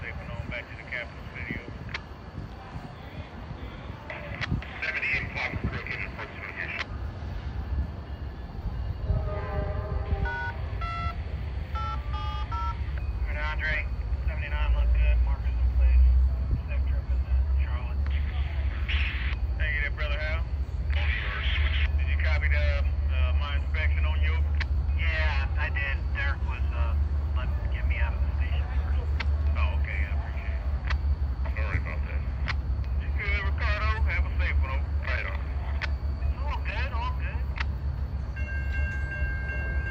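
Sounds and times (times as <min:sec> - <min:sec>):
indistinct voices: 0:00.0 - 0:39.9
locomotive idling rumble: 0:00.0 - 0:39.9.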